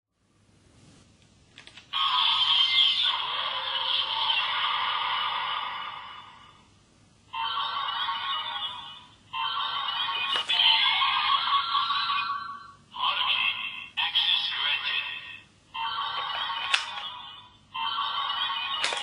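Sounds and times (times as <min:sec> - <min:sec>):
toy speaker electronic music: 0:01.9 - 0:06.3, 0:07.3 - 0:19.0.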